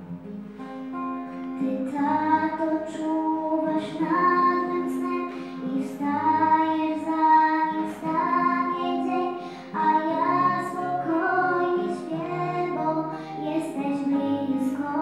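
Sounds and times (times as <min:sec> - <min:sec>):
instrumental accompaniment: 0:00.0 - 0:15.0
children singing a hymn: 0:01.9 - 0:15.0.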